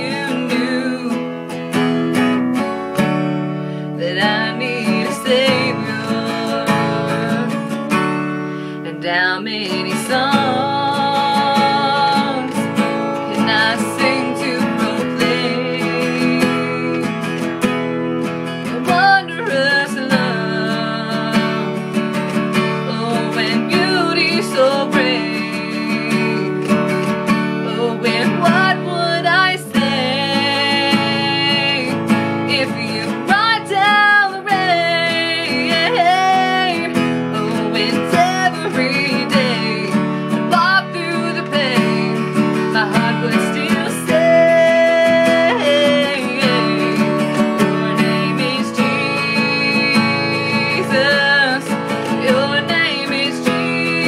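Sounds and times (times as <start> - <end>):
woman singing slow song: 0.0 - 2.3, 4.0 - 17.5, 18.5 - 54.0
acoustic guitar strumming: 0.0 - 54.0.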